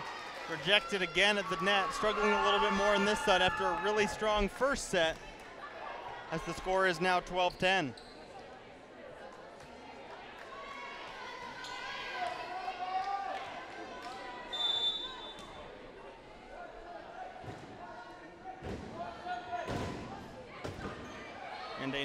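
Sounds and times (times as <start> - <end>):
short high whistle: 14.5 - 15.4.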